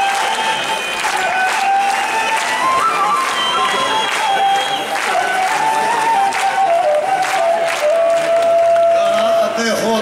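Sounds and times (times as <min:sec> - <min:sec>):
folk band playing: 0:00.0 - 0:09.7
audience clapping: 0:00.0 - 0:10.0
crowd noise: 0:00.0 - 0:10.0.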